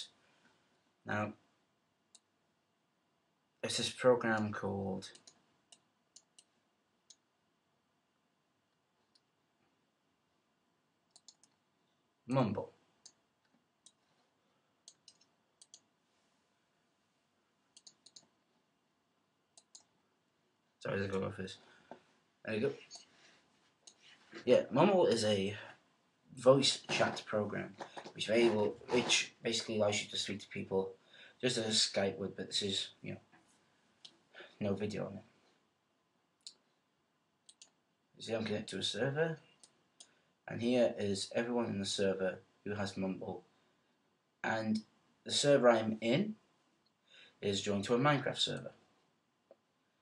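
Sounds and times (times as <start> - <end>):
computer mouse clicks: 5.1 - 6.5, 11.1 - 11.6, 14.8 - 15.9, 17.7 - 18.3, 19.6 - 19.9, 37.4 - 37.8.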